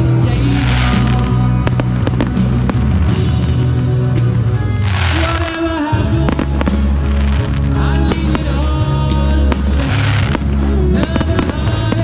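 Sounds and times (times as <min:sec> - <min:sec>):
fireworks bursting and crackling: 0:00.0 - 0:12.0
music with sustained chords: 0:00.0 - 0:12.0.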